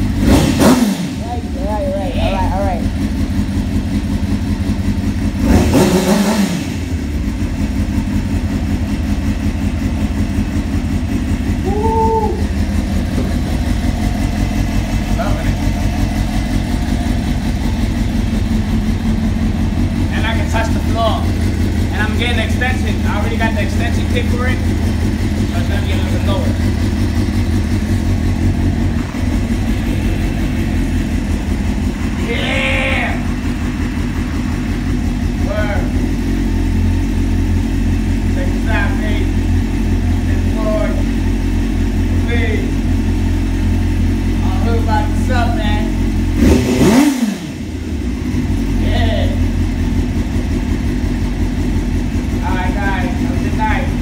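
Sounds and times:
motorcycle engine idling: 0.0 - 54.0.

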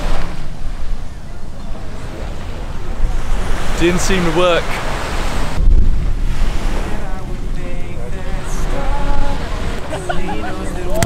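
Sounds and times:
surf washing: 0.0 - 11.0
wind buffeting microphone: 0.0 - 11.0
faint voices: 0.6 - 4.9, 6.8 - 11.0.

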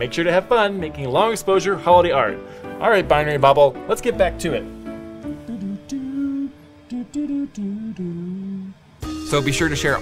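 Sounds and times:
man humming a tune: 5.2 - 8.9.

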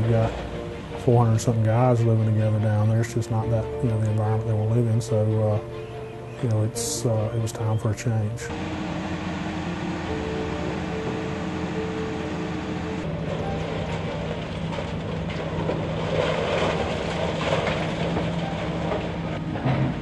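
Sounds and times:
diesel engines running: 0.0 - 20.0
concrete breaking and crunching: 13.3 - 20.0.

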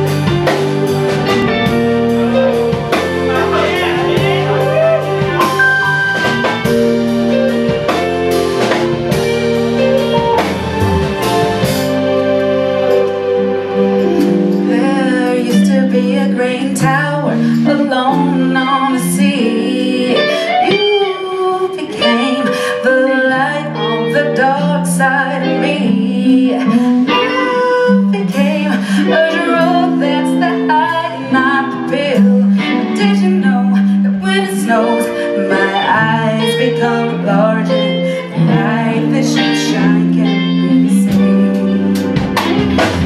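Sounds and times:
drum kit: 0.0 - 19.4, 41.0 - 43.0
bass guitar: 0.0 - 43.0
electric guitar: 0.0 - 43.0
keyboard: 0.0 - 43.0
woman singing: 14.6 - 42.0.

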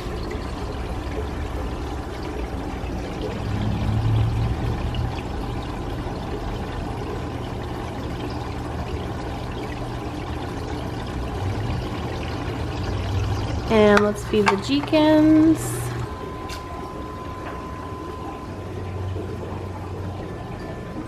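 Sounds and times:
water trickling in fish tank: 0.0 - 21.0.

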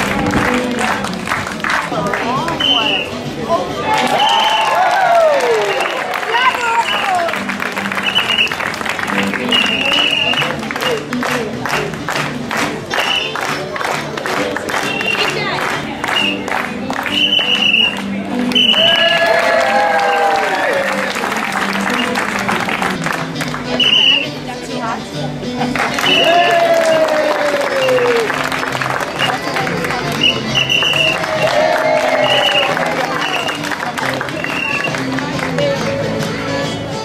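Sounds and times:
audience clapping along: 0.0 - 2.6, 3.9 - 24.1, 25.7 - 36.4
background music: 0.0 - 37.0
whistle toots: 2.6 - 3.2, 5.6 - 6.0, 6.7 - 7.2, 8.0 - 8.6, 9.4 - 10.6, 13.0 - 13.4, 14.9 - 15.3, 17.1 - 19.1, 23.8 - 24.4, 26.0 - 27.1, 29.2 - 29.5, 30.2 - 31.2, 32.2 - 33.6, 34.4 - 35.1.

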